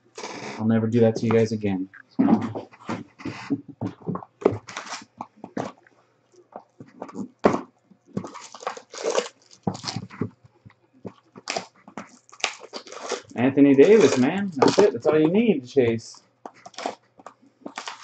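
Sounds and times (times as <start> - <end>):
cellophane wrap tearing and crinkling: 0.0 - 0.6, 8.2 - 10.2, 11.4 - 15.0, 16.7 - 17.0, 17.7 - 18.0.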